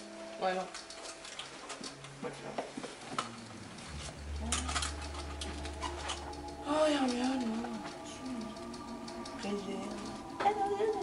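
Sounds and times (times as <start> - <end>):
low steady hum: 2.2 - 11.0
wavering voice: 4.0 - 11.0.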